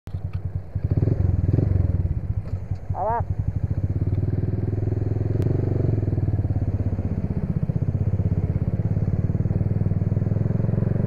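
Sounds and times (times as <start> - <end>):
scooter engine running: 0.1 - 11.0.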